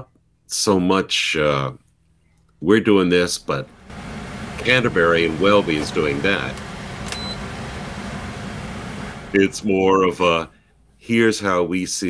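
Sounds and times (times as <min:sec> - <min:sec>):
background hiss: 0:02.7 - 0:12.0
faint high beep: 0:07.1 - 0:07.4.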